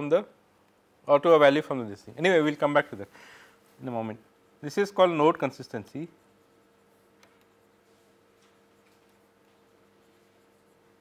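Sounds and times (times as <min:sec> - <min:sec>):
low steady hum: 0:00.0 - 0:11.0
stylus tapping and scratching: 0:04.4 - 0:11.0.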